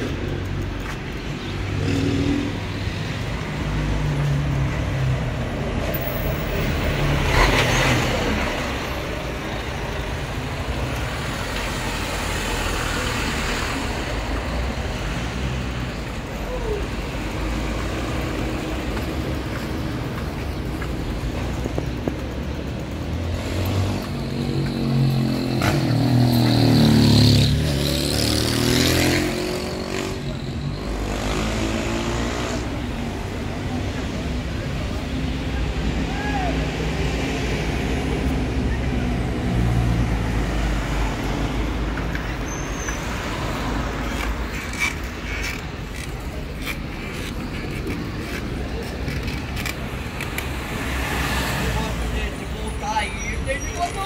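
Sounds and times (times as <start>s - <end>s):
street traffic: 0.0s - 54.0s.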